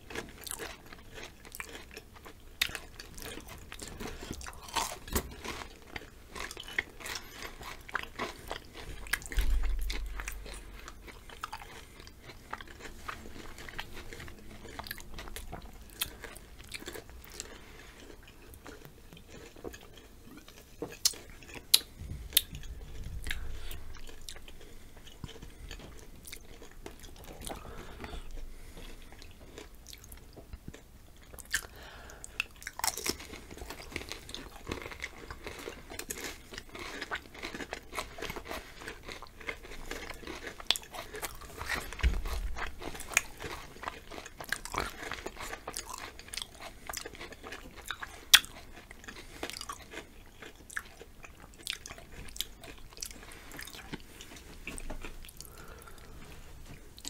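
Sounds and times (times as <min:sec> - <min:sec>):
crunching and chewing chips: 0:00.0 - 0:57.0.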